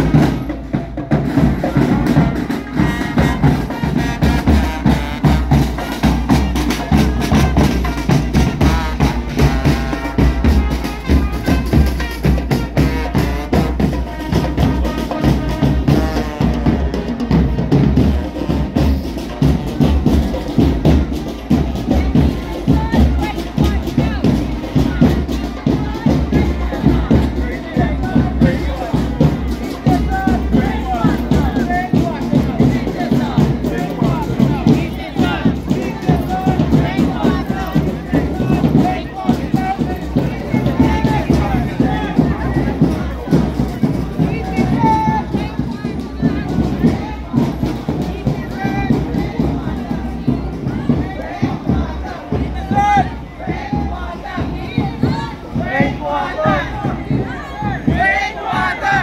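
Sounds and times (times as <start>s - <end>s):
snare and bass drums marching: 0.0s - 59.0s
brass horns: 1.2s - 20.4s.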